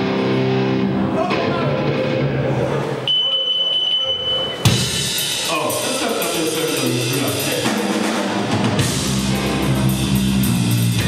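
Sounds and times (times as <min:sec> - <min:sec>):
guitar amplifier feedback whistle: 0:03.0 - 0:04.9
band instruments ringing: 0:03.0 - 0:10.9.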